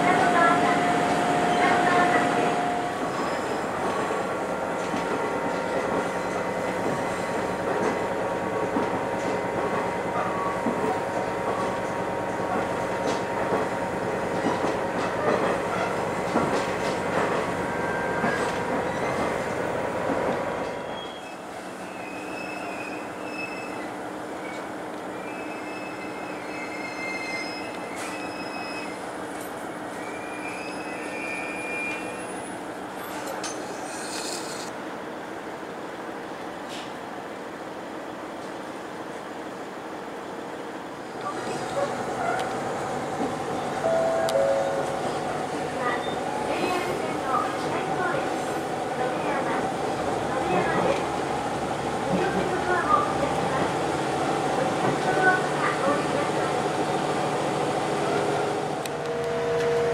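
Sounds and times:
diesel railcar running: 0.0 - 59.9
train wheel squeal: 3.1 - 3.6, 17.8 - 19.4, 20.8 - 29.1, 29.9 - 34.7.

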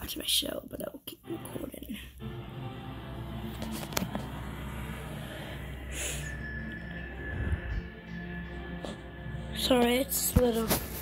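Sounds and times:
tv soundtrack music: 1.2 - 11.0.

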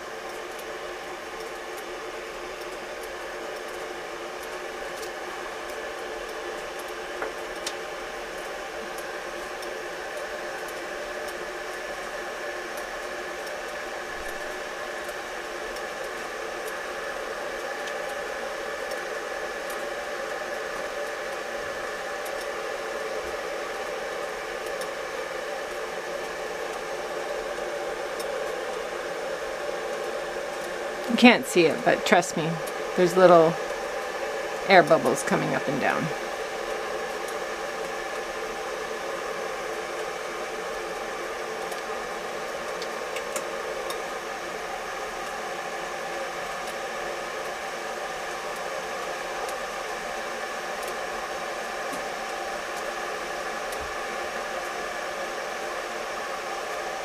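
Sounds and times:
water heating hiss: 0.0 - 57.0.

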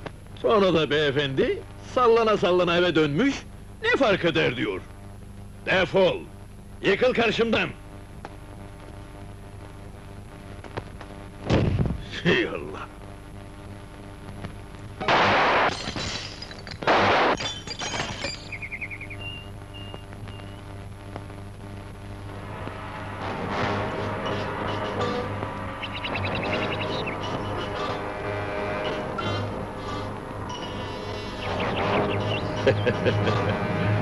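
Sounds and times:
glass bottles breaking: 15.2 - 18.6
film score music: 22.4 - 34.0.

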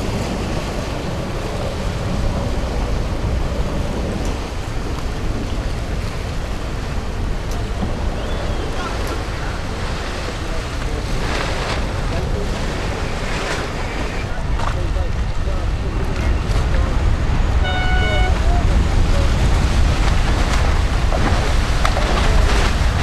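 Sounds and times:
water rushing along hull: 0.0 - 23.0
wind buffeting microphone: 0.0 - 23.0
short steady beep: 17.6 - 18.4.

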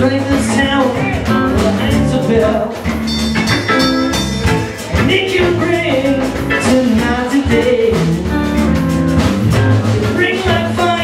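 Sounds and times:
bass guitar: 0.0 - 11.0
congas: 0.0 - 11.0
drum kit: 0.0 - 11.0
electric guitar: 0.0 - 11.0.

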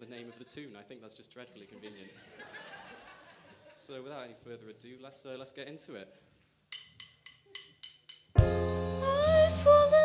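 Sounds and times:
strong bass: 8.4 - 10.0
sustained keyboard chords: 8.4 - 10.0.

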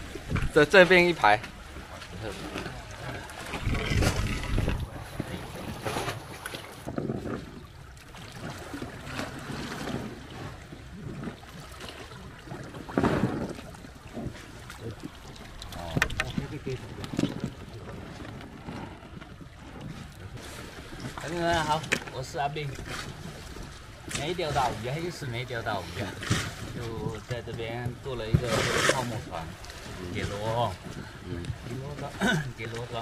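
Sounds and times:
wind buffeting microphone: 0.0 - 8.8
water sloshing: 0.0 - 33.0
knocks and scrapes on concrete: 27.8 - 29.3.

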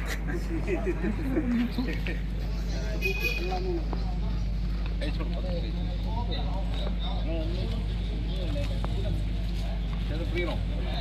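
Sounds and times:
low engine-like hum: 0.0 - 11.0
people talking: 0.0 - 11.0.

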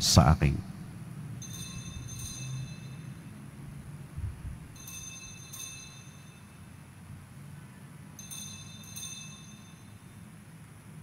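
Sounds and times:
low room hum: 0.0 - 11.0
altar bells ringing: 1.4 - 4.0, 4.6 - 7.3, 8.0 - 10.5.

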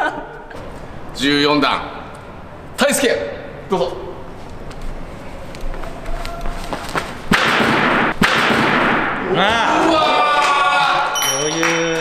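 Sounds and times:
running footsteps: 4.4 - 7.3.

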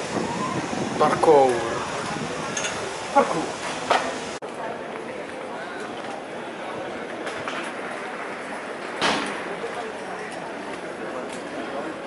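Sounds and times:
steady background hiss: 0.0 - 4.4.

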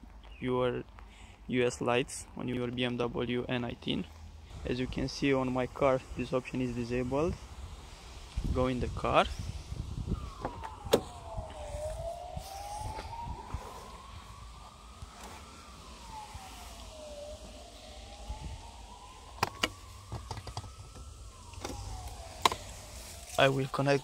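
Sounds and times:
faint siren wailing: 2.0 - 24.0.

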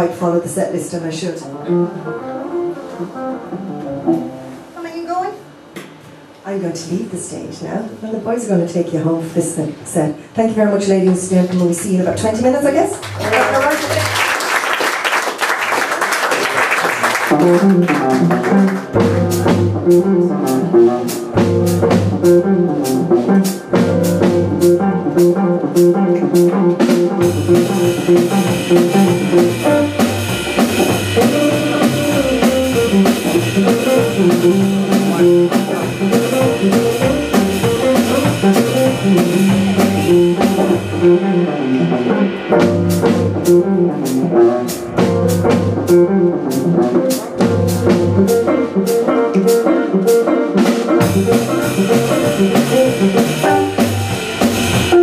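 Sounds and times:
drum kit playing: 1.7 - 6.3, 11.0 - 55.0
upright double bass: 17.2 - 49.0, 50.6 - 55.0
electric guitar: 17.2 - 55.0.

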